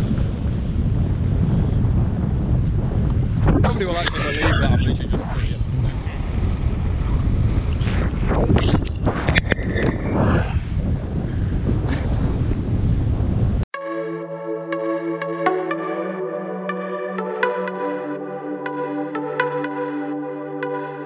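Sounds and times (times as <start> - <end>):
wind buffeting microphone: 0.0 - 13.6
electronic music: 13.7 - 21.0.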